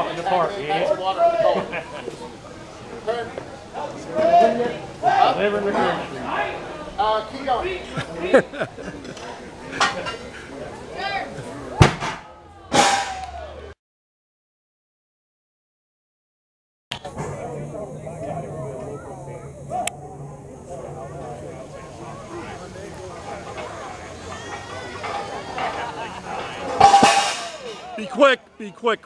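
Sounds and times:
onlookers' voices: 0:00.0 - 0:13.8, 0:17.0 - 0:29.0
people laughing: 0:01.3 - 0:02.4, 0:07.6 - 0:11.8, 0:21.5 - 0:26.8
weights clanking on concrete: 0:23.0 - 0:28.0.

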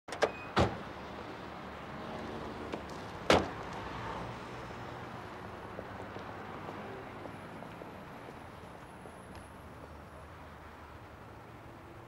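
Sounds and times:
street traffic: 0:00.1 - 0:12.0.

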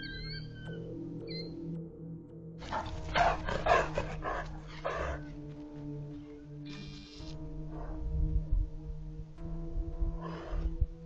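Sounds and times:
dog barking loudly: 0:02.7 - 0:05.2.

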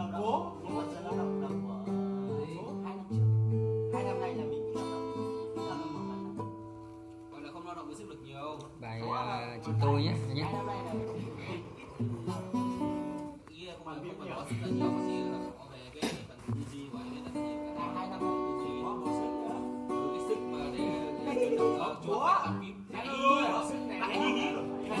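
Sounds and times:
acoustic guitar: 0:00.0 - 0:25.0.

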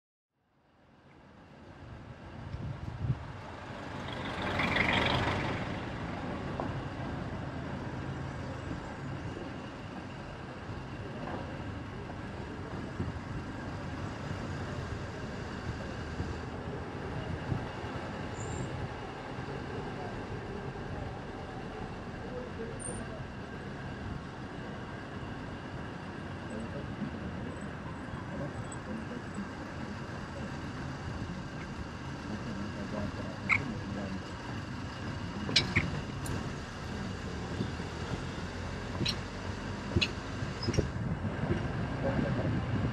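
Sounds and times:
hum of vehicles: 0:00.4 - 0:42.9.

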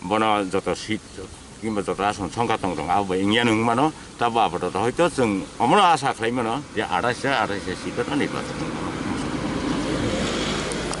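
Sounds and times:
road traffic noise: 0:00.0 - 0:11.0
motor vehicle passing: 0:07.4 - 0:11.0.

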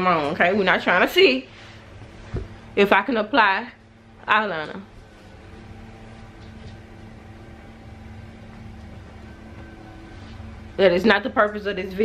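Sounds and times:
low background hum: 0:00.0 - 0:12.0
faint held tone: 0:07.5 - 0:11.0.

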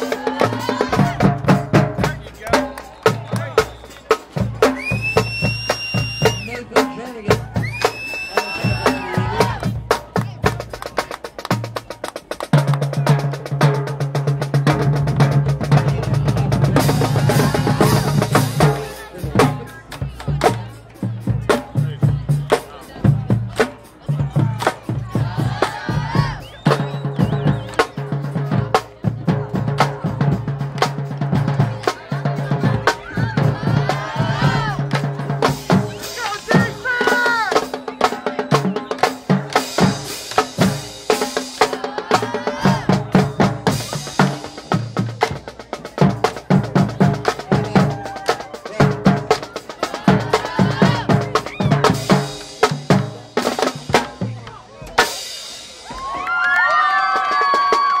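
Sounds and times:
snare drum strokes and rimshots: 0:00.0 - 0:56.2.

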